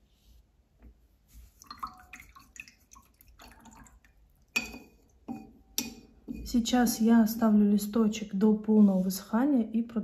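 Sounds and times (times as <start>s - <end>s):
water splashing and dripping: 1.5s - 6.0s.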